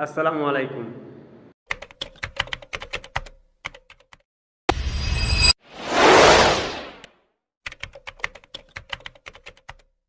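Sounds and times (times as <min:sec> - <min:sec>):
short rush of noise: 0:05.1 - 0:07.0.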